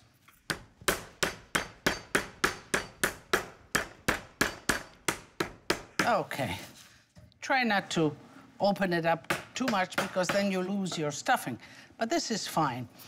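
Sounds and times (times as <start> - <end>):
meat mallet pounding meat: 0.5 - 6.1.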